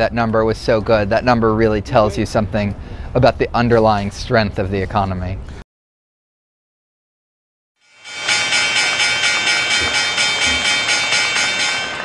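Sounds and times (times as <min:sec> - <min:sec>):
electronic pulse: 0:07.9 - 0:12.0
steady high electronic tones: 0:07.9 - 0:12.0.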